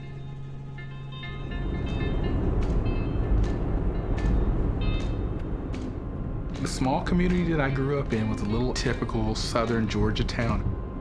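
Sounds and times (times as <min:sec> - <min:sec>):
soft plucked music: 0:00.0 - 0:05.9
low vehicle rumble: 0:00.0 - 0:11.0
sharp clicks: 0:02.6 - 0:10.3.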